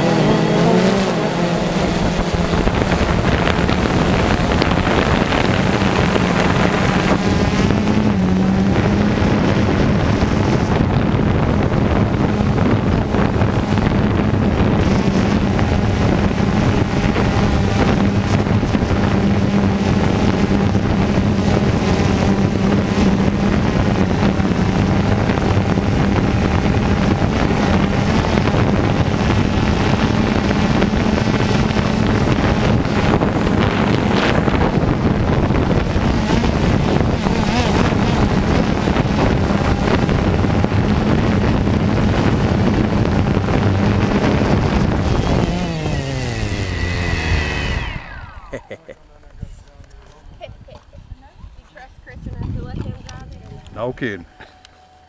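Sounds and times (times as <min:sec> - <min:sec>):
drone motors humming: 0:00.0 - 0:55.0.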